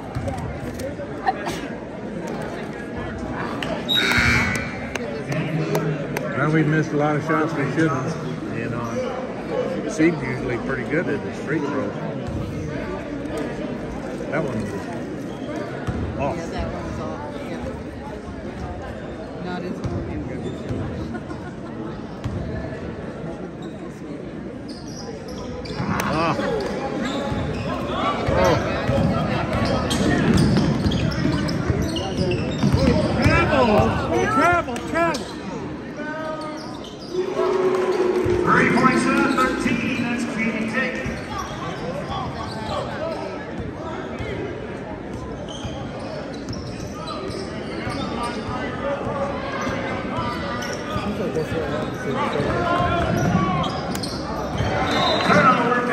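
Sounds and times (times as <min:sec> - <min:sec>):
spectators calling out: 0:03.9 - 0:05.0, 0:37.1 - 0:41.6.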